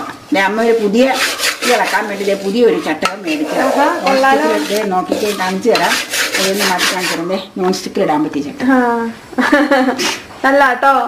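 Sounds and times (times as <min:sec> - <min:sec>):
woman talking: 0:00.3 - 0:09.2, 0:10.4 - 0:11.0
spatula scraping flour in pot: 0:00.4 - 0:07.5.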